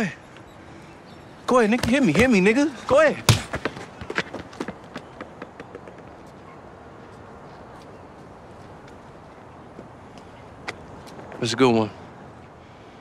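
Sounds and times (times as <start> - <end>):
urban background noise: 0.0 - 13.0.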